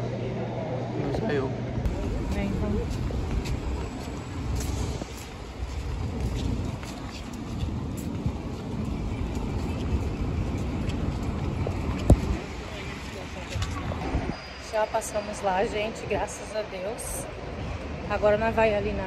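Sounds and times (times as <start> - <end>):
street traffic rumble: 0.0 - 19.0.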